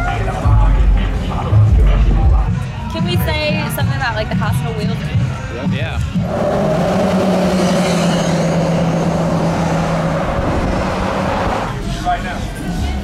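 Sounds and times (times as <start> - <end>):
vehicle engine running: 5.9 - 11.9.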